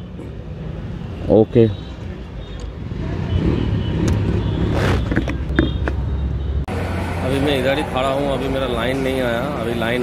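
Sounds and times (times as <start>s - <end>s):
vehicle engines running: 0.0s - 10.0s.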